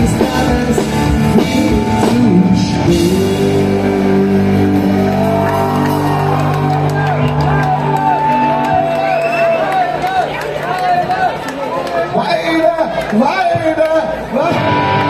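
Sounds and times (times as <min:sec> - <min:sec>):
live rock band playing: 0:00.0 - 0:09.2, 0:14.5 - 0:15.0
drumming: 0:00.0 - 0:10.1.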